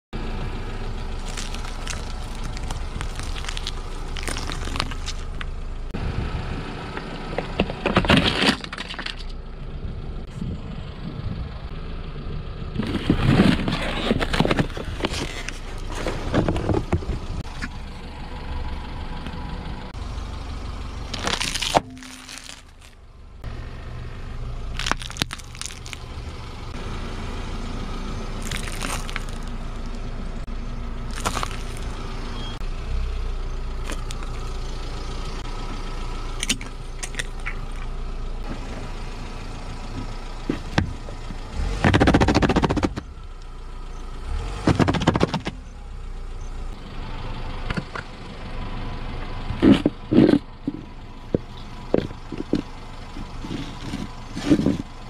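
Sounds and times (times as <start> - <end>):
low engine rumble: 0.1 - 55.0
dried leaves crackling under tyre: 0.9 - 5.6, 12.8 - 16.6, 21.0 - 23.1, 24.6 - 26.7, 27.7 - 32.6, 33.3 - 38.7, 52.0 - 55.0
sharp cracks of crushed item: 1.2 - 5.4, 21.1 - 23.0, 24.8 - 26.1, 28.4 - 29.5, 31.1 - 31.9, 33.8 - 34.5, 36.4 - 37.9, 44.6 - 45.6
tyre crushing cardboard box: 41.6 - 43.0, 44.6 - 45.6.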